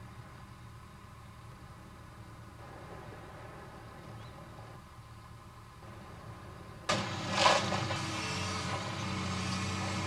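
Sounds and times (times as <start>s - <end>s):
excavator diesel engine running: 0.0s - 10.0s.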